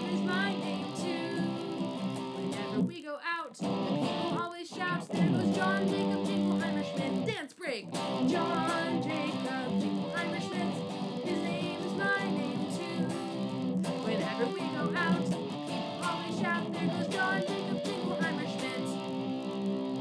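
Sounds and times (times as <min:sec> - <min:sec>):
electric guitar strumming: 0:00.0 - 0:03.0, 0:03.6 - 0:20.0
woman singing: 0:00.0 - 0:03.6, 0:04.2 - 0:19.1.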